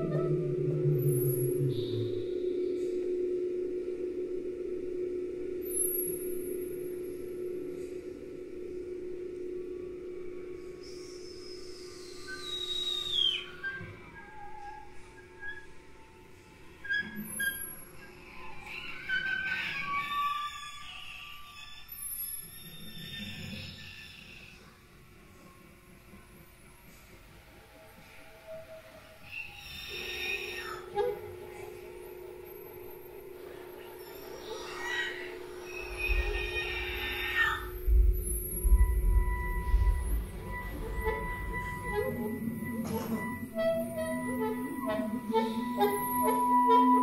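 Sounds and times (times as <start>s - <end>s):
low held tone: 0.0s - 13.1s, 30.9s - 47.0s
gliding high whistle-like tones: 0.0s - 47.0s.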